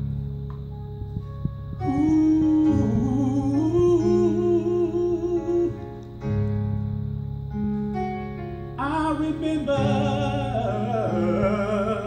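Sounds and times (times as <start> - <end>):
man singing long note: 1.8 - 6.0, 8.8 - 12.0.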